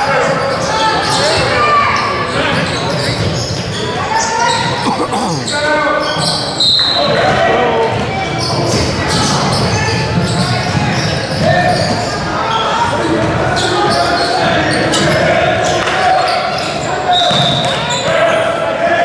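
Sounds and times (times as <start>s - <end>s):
voices calling out: 0.3s - 7.5s.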